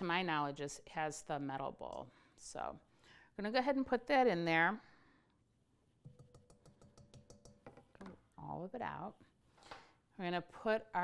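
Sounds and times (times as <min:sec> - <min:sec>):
spatula tapping metal bowl: 0:06.0 - 0:08.2.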